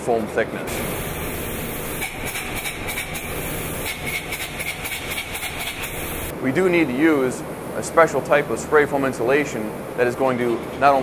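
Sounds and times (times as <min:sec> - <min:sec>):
spray foam gun hissing and sputtering: 0:00.7 - 0:06.3.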